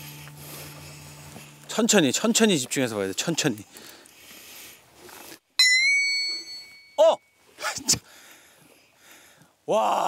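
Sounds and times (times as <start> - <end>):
bright bell-like ding: 5.6 - 7.4.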